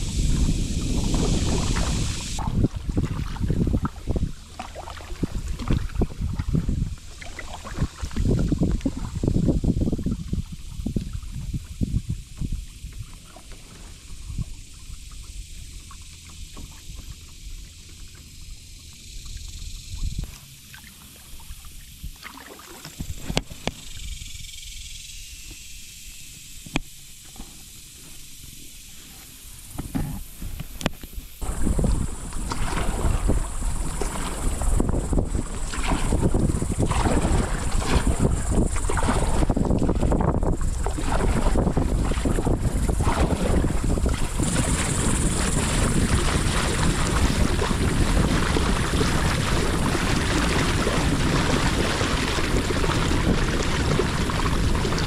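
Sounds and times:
choppy water rushing against kayak: 0.0 - 24.0, 26.4 - 55.0
kayak paddle strokes: 0.0 - 24.5, 25.4 - 55.0
water dripping and splashing: 0.6 - 11.8, 12.4 - 24.0, 30.6 - 55.0.

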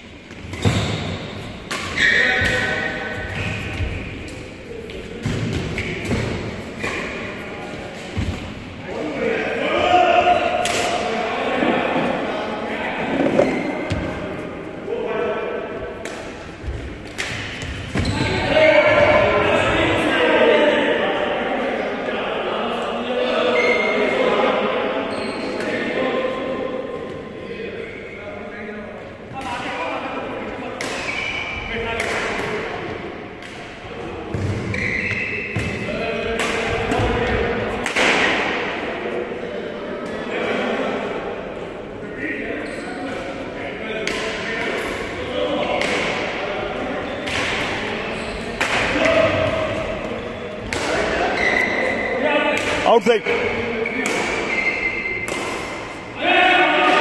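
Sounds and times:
rackets hitting shuttlecock: 0.3 - 2.9, 10.6 - 11.1, 45.8 - 46.3, 50.6 - 51.5, 52.6 - 56.0.

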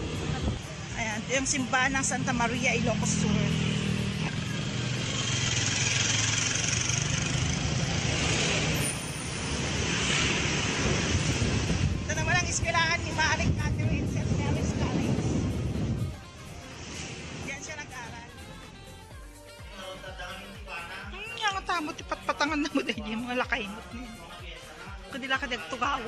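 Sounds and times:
wind rushing over microphone: 0.0 - 1.0, 9.7 - 17.7
engine hum: 0.0 - 19.1.

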